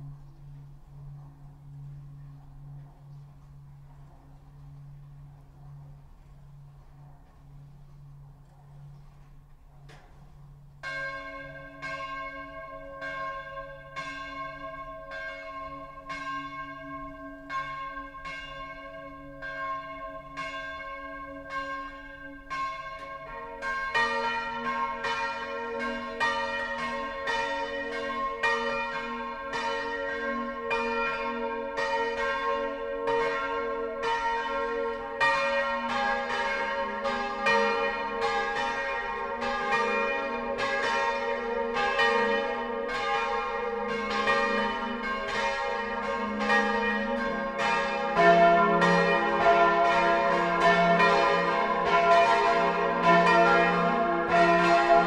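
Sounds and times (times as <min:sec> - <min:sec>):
church bells pealing: 0:00.0 - 0:55.0.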